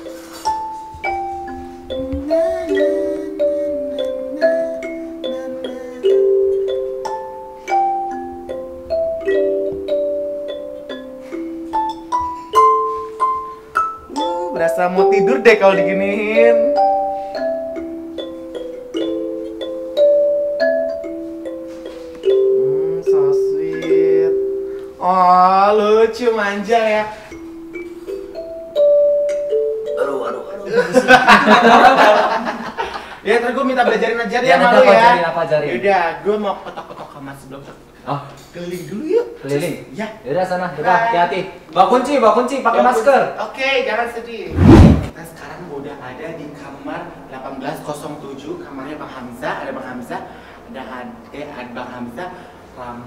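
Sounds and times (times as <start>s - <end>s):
kalimba melody: 0.0s - 25.2s, 27.2s - 32.4s.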